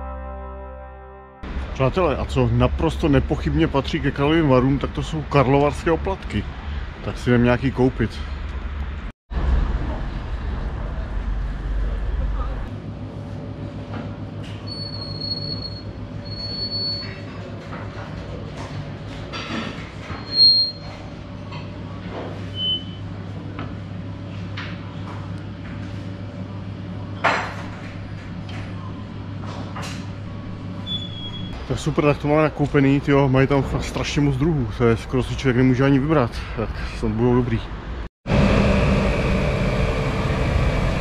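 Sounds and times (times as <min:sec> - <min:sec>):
machine mechanical hum: 0:09.4 - 0:34.8, 0:37.8 - 0:41.0
short high squeaks: 0:14.6 - 0:17.2, 0:20.1 - 0:21.0.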